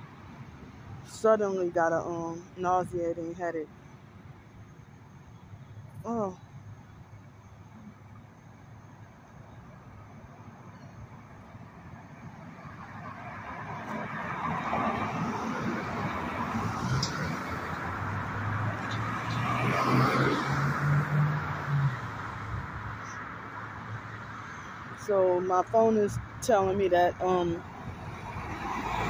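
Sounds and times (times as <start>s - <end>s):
cars passing: 0.0s - 29.0s.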